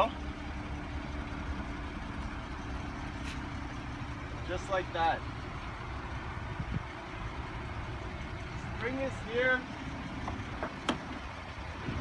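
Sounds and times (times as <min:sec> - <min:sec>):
convertible roof motor humming: 0:00.0 - 0:12.0.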